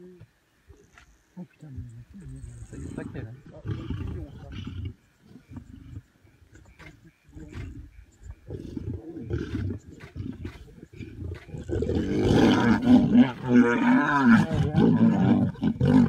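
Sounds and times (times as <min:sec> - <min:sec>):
lions growling: 0:02.1 - 0:16.0.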